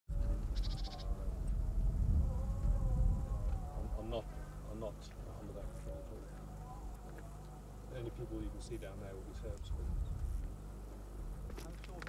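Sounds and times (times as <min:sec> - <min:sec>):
steady low rumble: 0:00.1 - 0:12.0
livestock bleating: 0:00.2 - 0:01.3.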